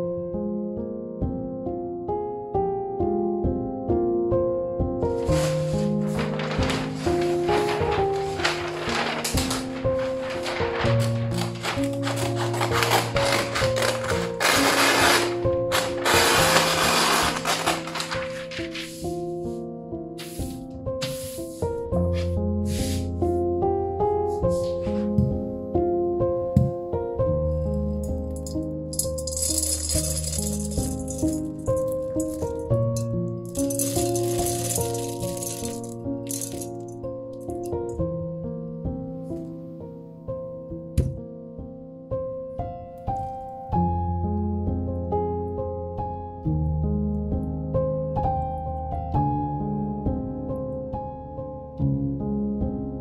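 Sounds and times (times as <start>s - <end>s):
background music with held notes: 0.0s - 53.0s
paper rustling and crackling: 5.2s - 19.1s, 28.4s - 37.0s
scissors cutting paper: 5.3s - 19.0s, 33.5s - 36.8s
pellets rattling in glass bowl: 5.4s - 18.4s, 28.4s - 36.9s.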